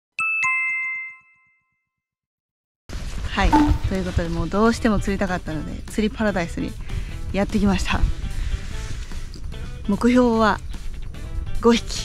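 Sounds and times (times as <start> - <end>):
two-note descending chime: 3.5 - 4.0.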